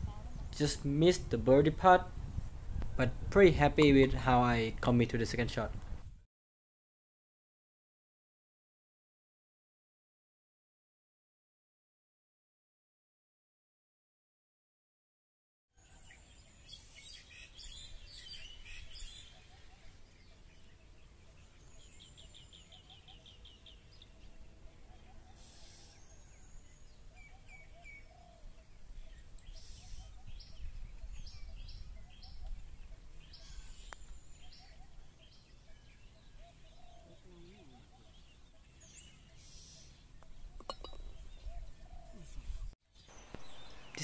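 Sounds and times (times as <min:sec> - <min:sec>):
bird trill: 0:15.8 - 0:42.3
birds chirping and calling: 0:15.8 - 0:44.0.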